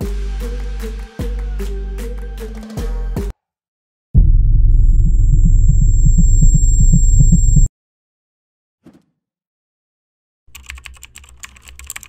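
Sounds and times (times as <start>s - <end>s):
high-pitched whine: 4.2s - 7.7s
low pulsing rumbling drone: 4.2s - 7.7s.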